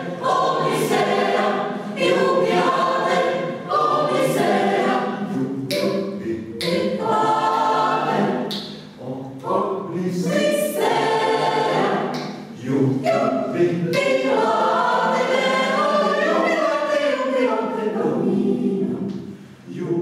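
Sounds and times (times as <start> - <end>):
mixed choir singing a cappella: 0.0 - 20.0
singers breathing: 19.2 - 19.7.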